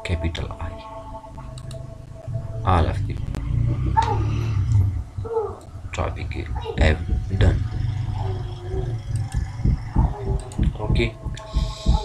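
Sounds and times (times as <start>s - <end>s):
steady low hum: 0.0s - 12.0s
computer mouse clicks: 1.5s - 1.8s, 9.1s - 9.5s, 10.4s - 10.7s.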